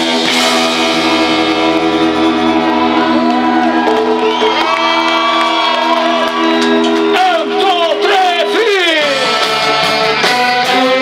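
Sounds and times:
live rock band: 0:00.0 - 0:11.0
audience shouting: 0:02.3 - 0:11.0
person singing: 0:10.4 - 0:11.0.

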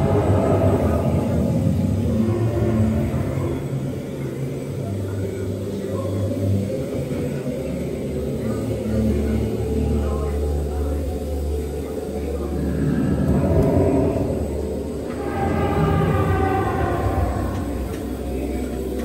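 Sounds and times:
low rumbling soundtrack notes: 0:00.0 - 0:19.0.

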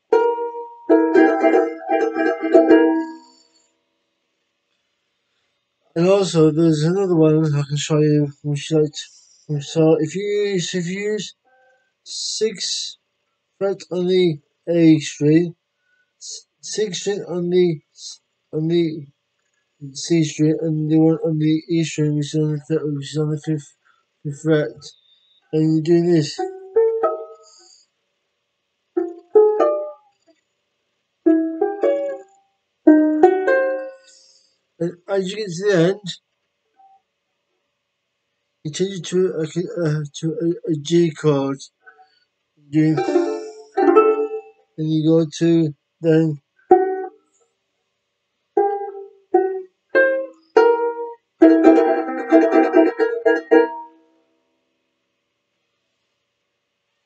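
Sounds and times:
banjolele plucked riff: 0:00.0 - 0:03.4, 0:16.2 - 0:19.0, 0:24.3 - 0:25.0, 0:25.6 - 0:27.6, 0:29.0 - 0:30.0, 0:31.3 - 0:32.3, 0:32.9 - 0:34.2, 0:42.8 - 0:47.2, 0:48.6 - 0:54.1.

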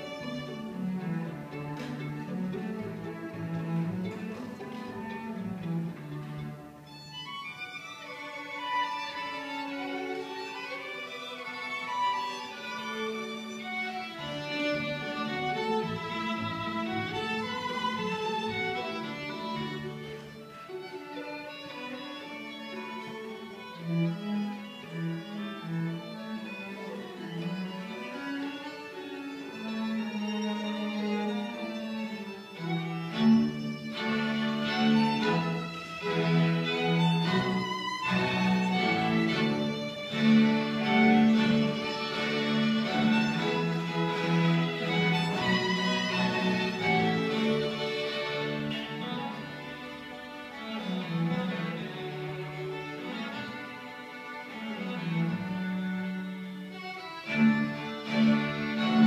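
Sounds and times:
violin ensemble playing: 0:00.0 - 0:59.0.

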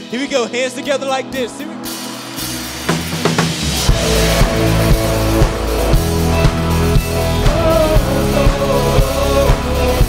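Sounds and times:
live worship band: 0:00.0 - 0:10.0
bass: 0:01.4 - 0:10.0.

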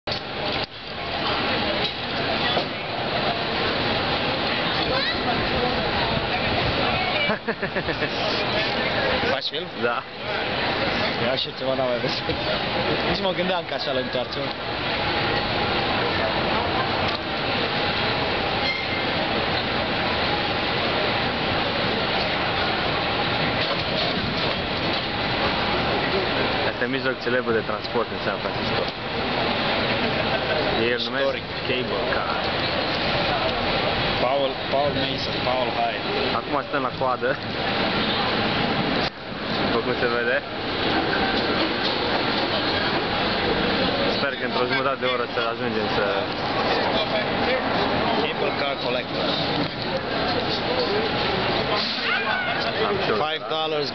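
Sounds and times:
cable car running on rails: 0:00.1 - 0:53.9.

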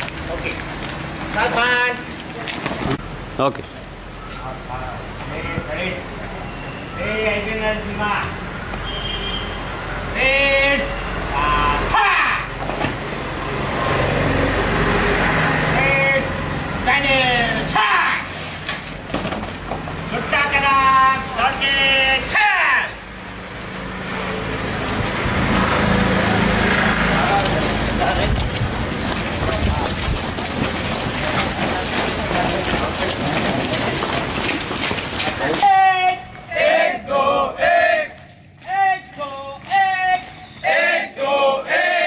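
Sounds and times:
footsteps running on wet pavement: 0:00.0 - 0:03.0, 0:23.2 - 0:36.5, 0:37.9 - 0:40.6
men chanting rhythmically: 0:35.6 - 0:42.0.

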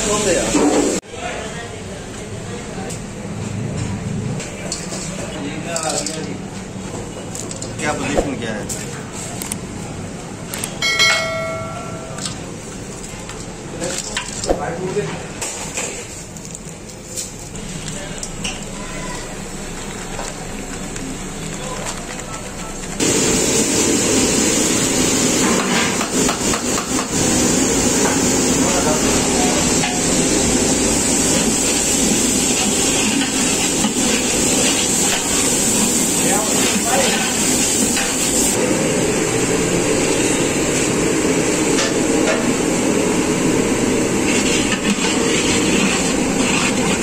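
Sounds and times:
gas burner hissing: 0:00.0 - 0:01.0, 0:23.0 - 0:47.0
oil sizzling in a pot: 0:23.0 - 0:38.6.

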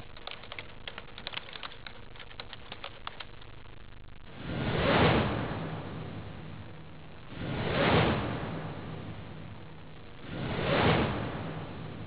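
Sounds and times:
whoosh transition effect: 0:04.3 - 0:06.6, 0:07.3 - 0:12.0.

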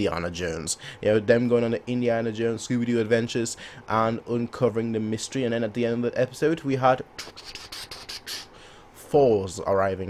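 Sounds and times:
breathy hissing mouth sounds: 0:07.2 - 0:08.8.

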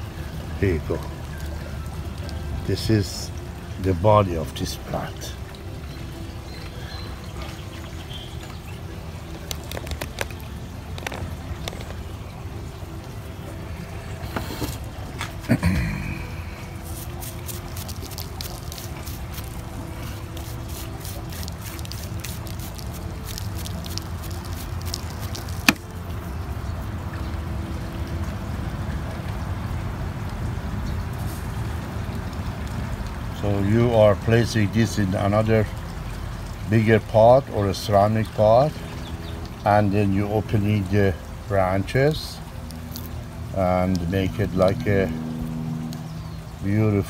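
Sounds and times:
toothbrush scrubbing roots: 0:16.7 - 0:25.8, 0:42.6 - 0:45.1
low hum: 0:42.4 - 0:46.7.

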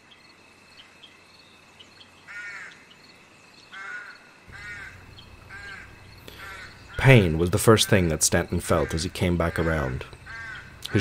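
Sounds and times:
faint insect chirping: 0:00.0 - 0:11.0
crows cawing: 0:02.2 - 0:02.9, 0:03.7 - 0:11.0.

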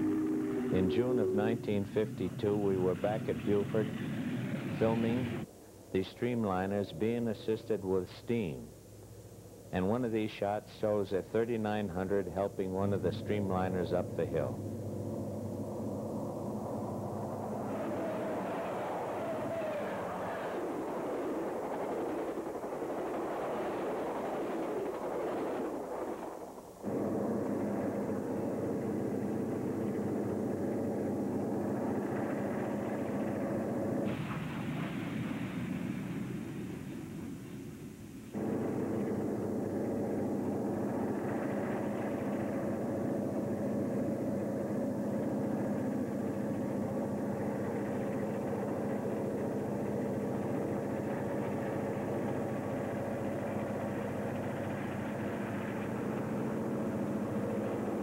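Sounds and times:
steam locomotive working hard: 0:00.0 - 0:05.5, 0:09.9 - 0:58.0.

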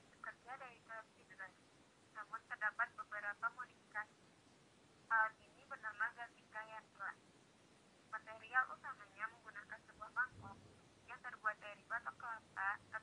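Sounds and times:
woman narrating: 0:00.2 - 0:04.2, 0:05.1 - 0:07.2, 0:08.2 - 0:13.0.

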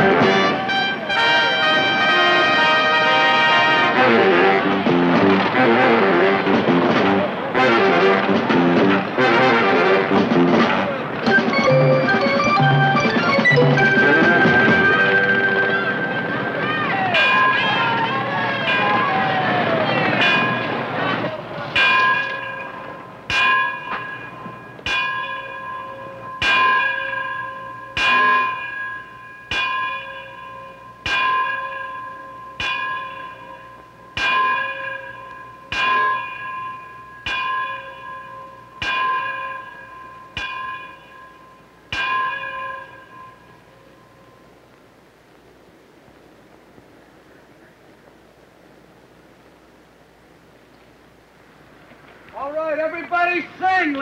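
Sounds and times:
church bell ringing: 0:11.2 - 0:44.6.

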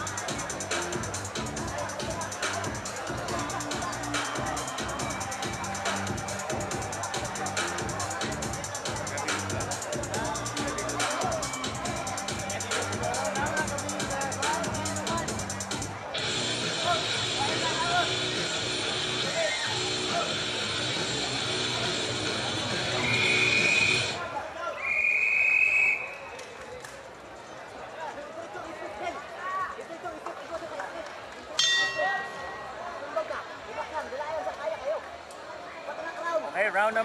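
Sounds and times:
music with a beat over pa: 0:00.0 - 0:24.2
crowd chatter and shouts: 0:00.0 - 0:37.0
ring bell: 0:31.6 - 0:32.9.

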